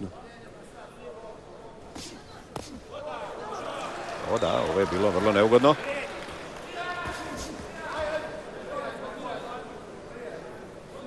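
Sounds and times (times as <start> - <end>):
murmur of arena voices: 0.0 - 11.0.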